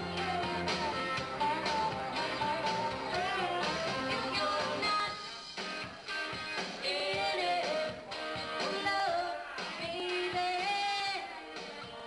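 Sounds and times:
woman singing into microphone: 0.0 - 5.4, 6.8 - 12.0
guitar-led backing track: 0.0 - 12.0.

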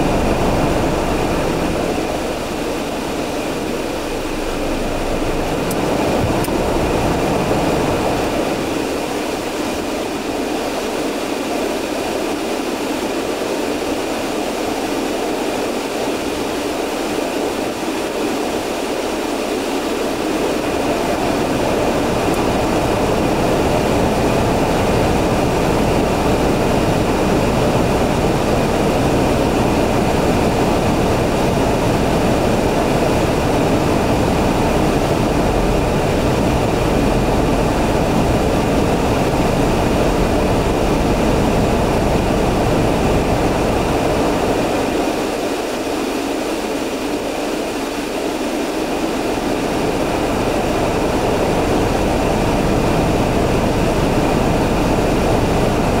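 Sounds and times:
deep rumble: 0.0 - 9.1, 31.0 - 44.7
car engine running inside cabin: 0.0 - 10.8, 20.5 - 45.3, 49.5 - 56.0.

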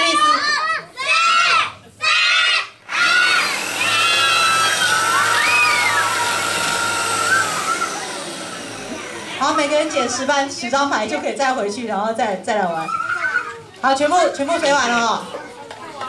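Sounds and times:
children shrieking and cheering: 0.0 - 10.4, 12.7 - 13.8
electric drill humming: 2.9 - 10.6.

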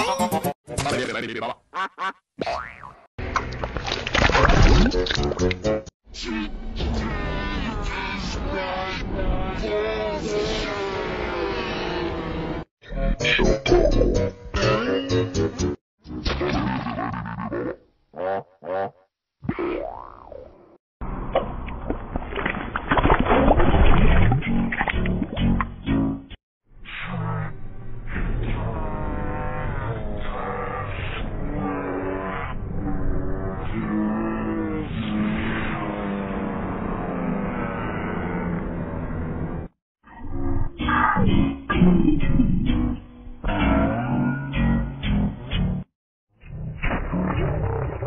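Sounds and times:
slowed low smeared voice: 6.2 - 12.6, 27.0 - 42.8.

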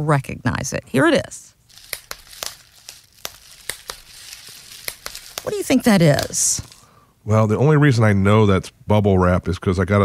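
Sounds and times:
bubble wrap popping: 1.7 - 6.9
plastic crinkling: 1.7 - 6.9.

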